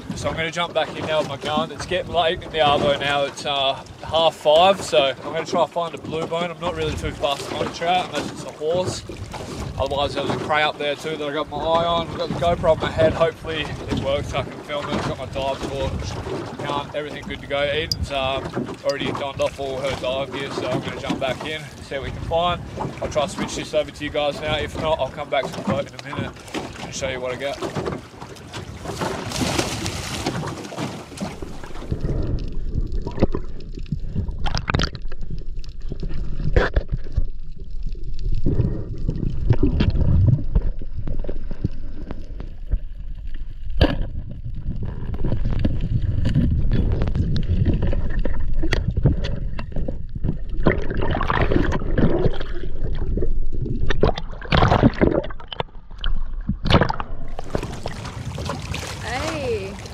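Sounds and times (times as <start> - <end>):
diver splashing into water: 28.8 - 31.9, 56.6 - 59.9
muffled underwater gurgling: 31.2 - 58.1.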